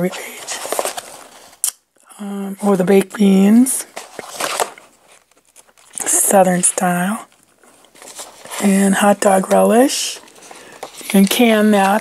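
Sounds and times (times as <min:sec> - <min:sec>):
paper page rustling: 0:00.3 - 0:01.6, 0:03.2 - 0:12.0.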